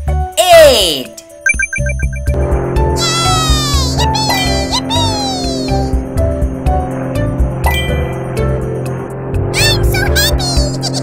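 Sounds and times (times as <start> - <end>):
cartoon buzzing falling in pitch: 1.8 - 6.0.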